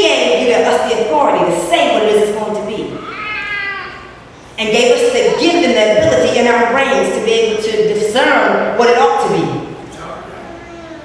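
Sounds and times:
woman preaching: 0.0s - 3.2s, 4.5s - 9.7s.

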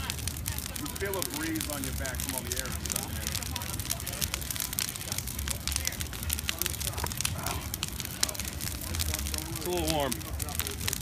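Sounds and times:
bonfire crackling and popping: 0.0s - 11.0s
low fire rumble: 0.0s - 11.0s.

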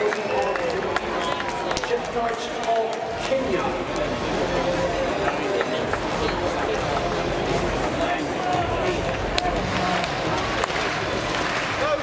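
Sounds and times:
stadium crowd hubbub: 0.0s - 12.0s.

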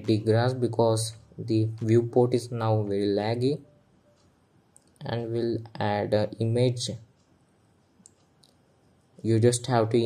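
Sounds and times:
faint computer clicks: 3.2s - 10.0s.

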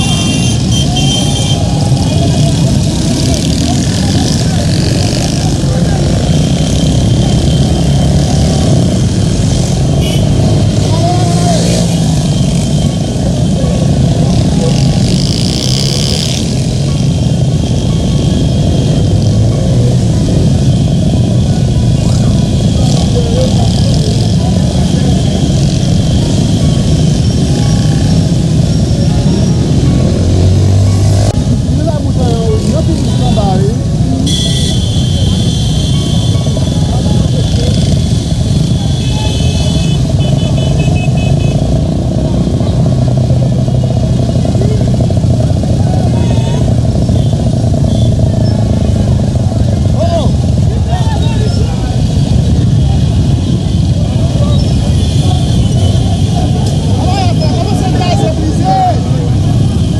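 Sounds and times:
crowd voices: 0.0s - 59.9s
motorcycle engines running: 0.0s - 59.9s.

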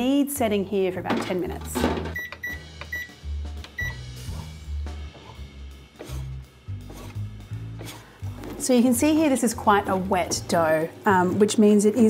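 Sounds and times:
background music with bass: 0.0s - 11.3s
control panel beeping: 2.1s - 4.1s.

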